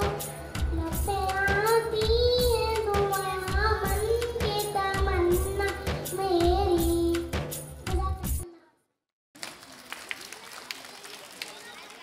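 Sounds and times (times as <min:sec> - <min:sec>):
child singing over loudspeakers: 0:00.0 - 0:07.3.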